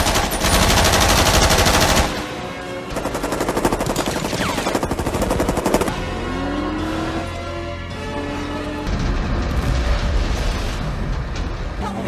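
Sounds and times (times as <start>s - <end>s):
rapid automatic gunfire: 0.0s - 2.2s, 2.9s - 5.9s
film score music: 0.0s - 12.0s.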